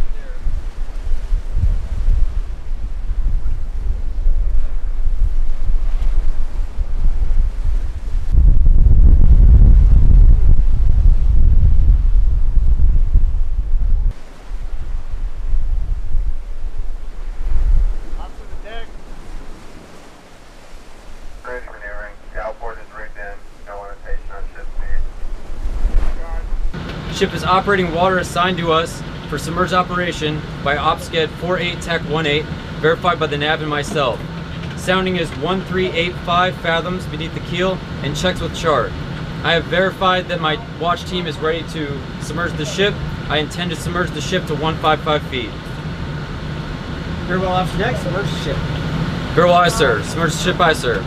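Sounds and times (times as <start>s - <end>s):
wind buffeting microphone: 0.0s - 36.2s
sea breaking around bow: 25.4s - 26.7s.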